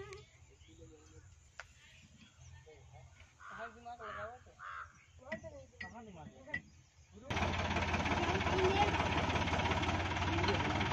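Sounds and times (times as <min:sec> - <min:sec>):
crow cawing: 0:03.4 - 0:05.0.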